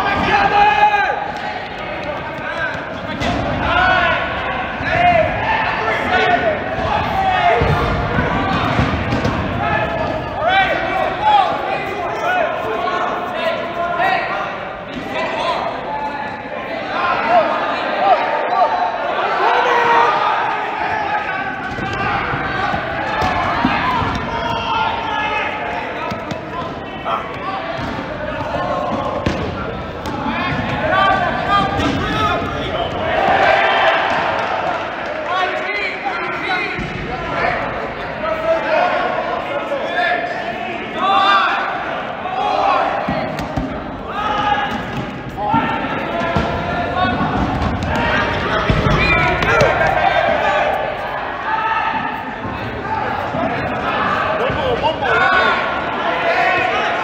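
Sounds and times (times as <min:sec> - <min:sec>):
players shouting: 0:00.0 - 0:57.0.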